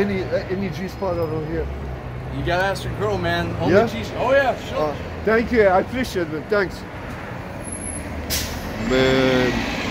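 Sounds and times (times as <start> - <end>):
vehicle rumble: 0.0 - 9.9
short hiss: 8.3 - 8.7
man's voice: 8.8 - 9.7.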